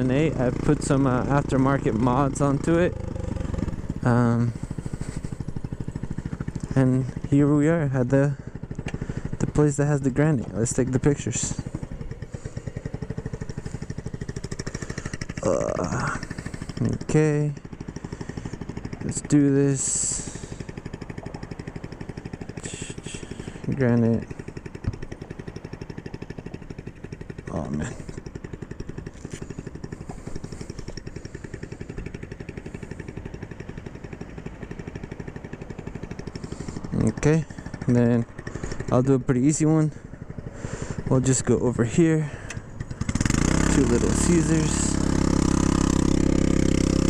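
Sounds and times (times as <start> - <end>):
scooter engine idling: 0.0 - 47.0.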